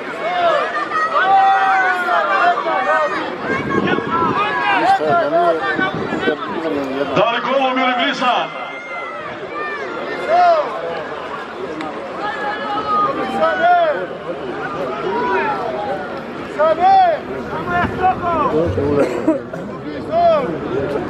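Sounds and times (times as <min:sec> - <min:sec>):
crowd shouting: 0:00.0 - 0:20.9.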